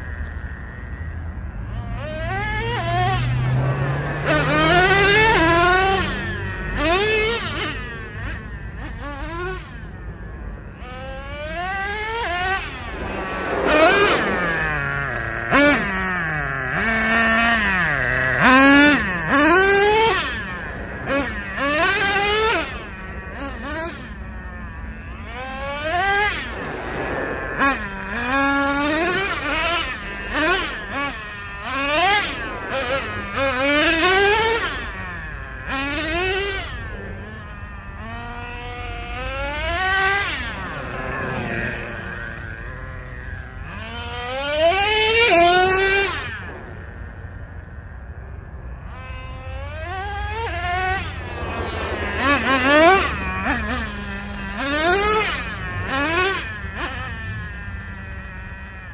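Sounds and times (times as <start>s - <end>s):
rc truck engine revving: 0.0s - 58.9s.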